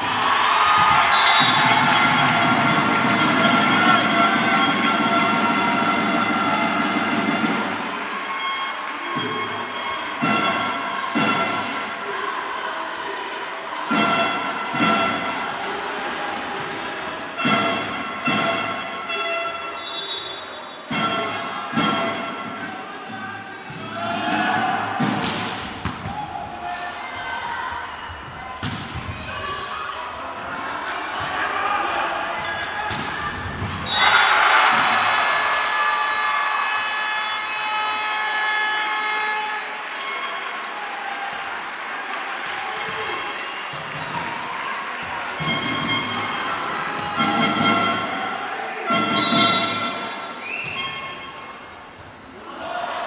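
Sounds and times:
players shouting: 0:00.0 - 0:50.9, 0:52.3 - 0:53.0
crowd cheering: 0:00.0 - 0:53.0
volleyball slaps: 0:25.0 - 0:26.3, 0:28.6 - 0:29.2.

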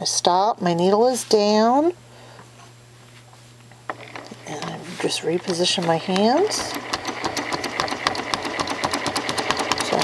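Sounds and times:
sewing machine stitching: 0:05.4 - 0:10.0.

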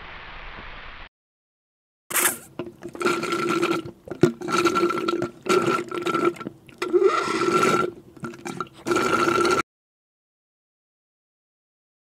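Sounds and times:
slurping through a straw: 0:02.1 - 0:09.6.

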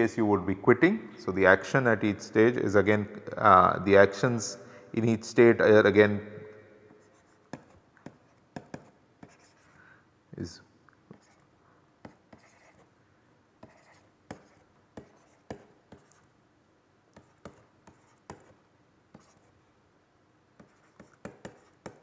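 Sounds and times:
pen tapping and scratching: 0:07.0 - 0:09.6, 0:11.1 - 0:11.4, 0:12.0 - 0:12.9, 0:13.6 - 0:16.3, 0:17.2 - 0:19.5, 0:20.6 - 0:22.0.

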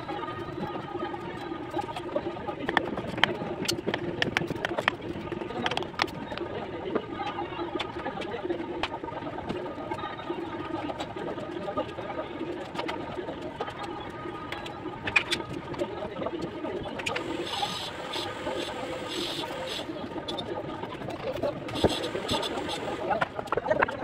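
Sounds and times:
low murmur: 0:11.2 - 0:24.0.

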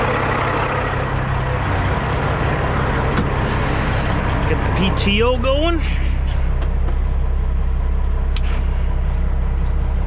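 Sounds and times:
truck diesel engine idling: 0:00.0 - 0:10.0.

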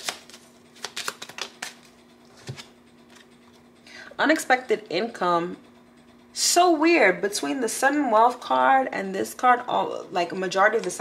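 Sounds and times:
cards shuffling: 0:00.0 - 0:03.3.

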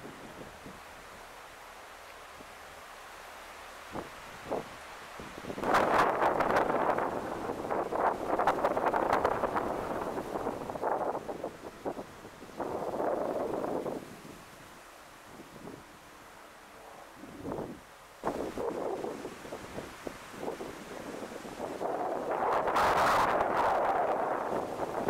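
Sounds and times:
wind rustling tree leaves: 0:00.0 - 0:25.0.

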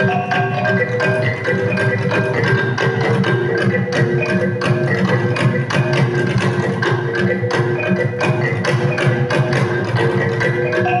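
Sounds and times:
regular beat of struck strokes: 0:00.0 - 0:11.0.

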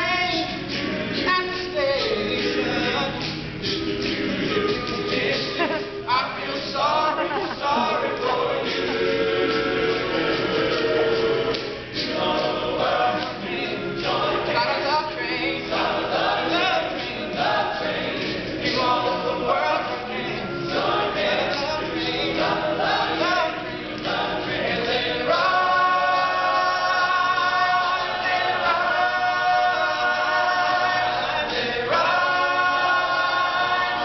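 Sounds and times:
male group backing harmonies: 0:00.0 - 0:34.0.

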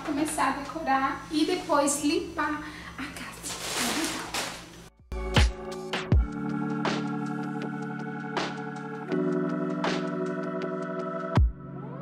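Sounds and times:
plastic bag rustling: 0:03.3 - 0:04.9
fabric rustling: 0:03.4 - 0:04.8.

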